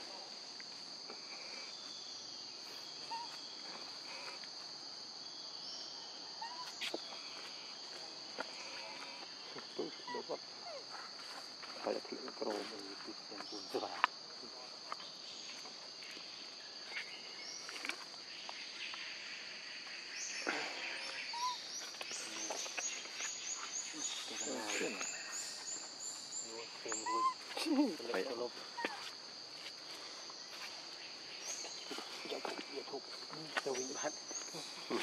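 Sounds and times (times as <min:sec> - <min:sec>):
insect drone: 0:00.0 - 0:35.0
voice-like calls: 0:26.7 - 0:28.0.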